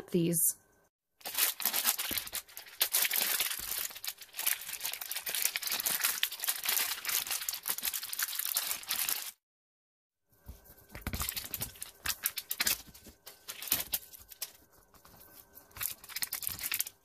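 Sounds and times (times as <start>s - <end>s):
plastic wrap crinkling and tearing: 1.2s - 9.4s, 11.0s - 17.0s.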